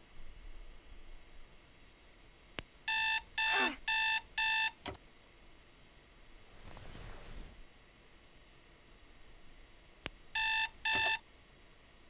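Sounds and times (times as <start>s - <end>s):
alarm clock beeping: 2.9s - 4.8s, 10.4s - 11.2s
alarm clock switch click: 10.4s - 11.2s.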